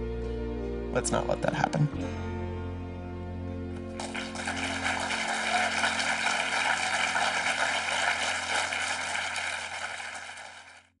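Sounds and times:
quiet steady music: 0.0s - 10.0s
audience applauding: 3.9s - 11.0s.

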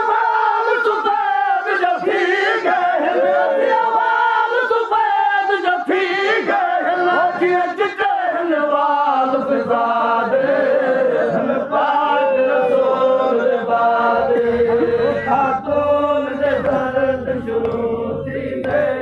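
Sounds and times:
voices chanting devotional song: 0.0s - 19.0s.

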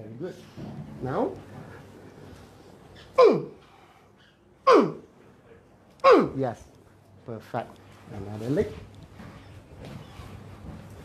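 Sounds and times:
man crying out in pain: 3.2s - 3.6s, 4.7s - 5.0s.

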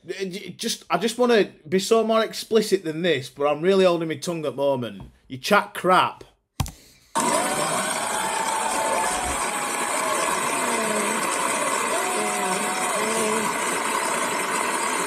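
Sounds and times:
talk show voices: 7.2s - 14.6s.

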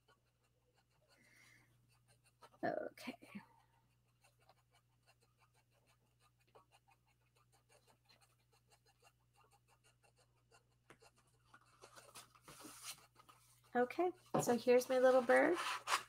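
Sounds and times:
fingertips rubbing on paper: 1.8s - 2.8s, 3.8s - 13.9s.

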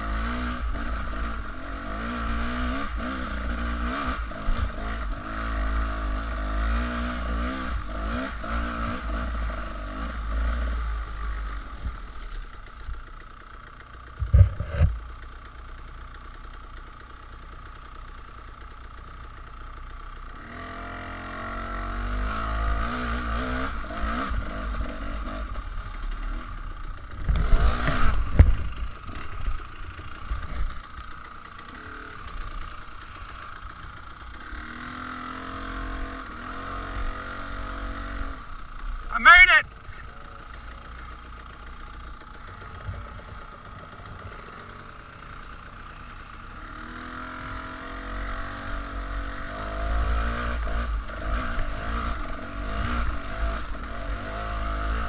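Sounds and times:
dirt bike engine revving: 0.0s - 16.6s, 20.3s - 55.0s.

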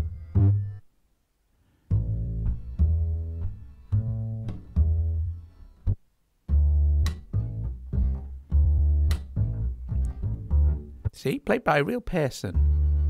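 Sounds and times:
plucked acoustic bass notes: 0.0s - 0.8s, 1.9s - 11.3s, 12.5s - 13.0s.

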